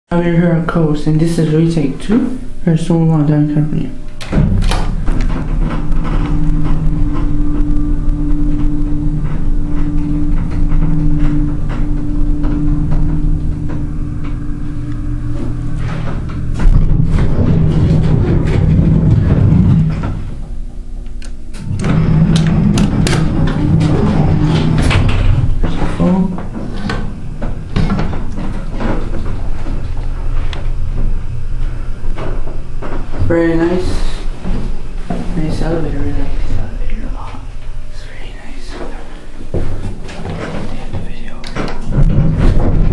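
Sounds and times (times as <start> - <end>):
elevator hum: 0.1 - 42.9
clicks and knocks: 4.2 - 20.3.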